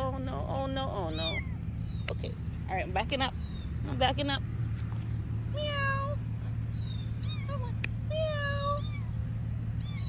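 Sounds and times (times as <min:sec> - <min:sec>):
kitten mewing: 0:01.0 - 0:01.6, 0:07.2 - 0:09.2.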